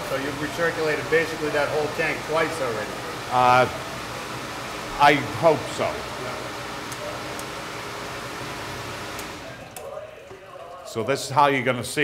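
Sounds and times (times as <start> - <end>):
pump running: 0.0 - 9.8.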